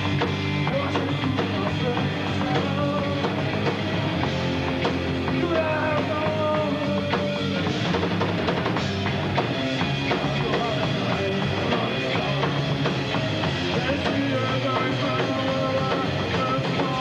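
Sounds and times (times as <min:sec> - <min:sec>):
drum kit: 0:00.0 - 0:17.0
electric guitar: 0:00.0 - 0:17.0
rock band playing: 0:00.0 - 0:17.0.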